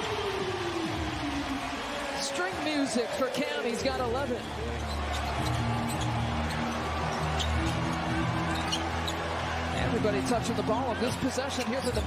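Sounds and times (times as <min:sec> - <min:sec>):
arena music playing: 0:00.0 - 0:12.0
crowd background: 0:00.0 - 0:12.0
sneaker squeaks: 0:04.4 - 0:09.5, 0:10.9 - 0:12.0.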